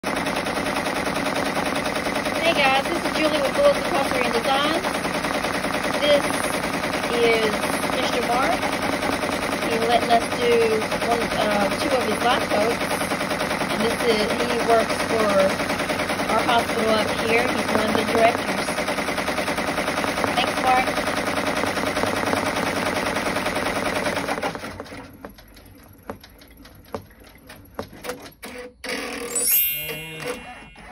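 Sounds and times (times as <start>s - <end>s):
embroidery machine stitching: 0.0s - 30.9s.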